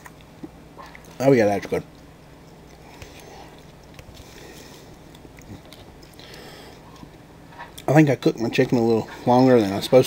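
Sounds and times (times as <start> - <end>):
person chewing food: 2.5 - 7.9.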